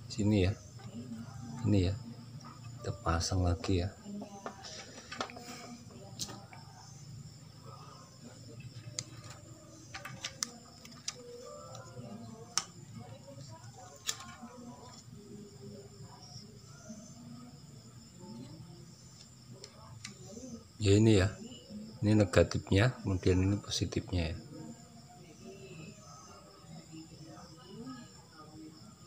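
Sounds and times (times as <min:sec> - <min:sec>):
hands handling circuit board: 0:04.5 - 0:05.6, 0:08.7 - 0:12.8, 0:13.5 - 0:15.0.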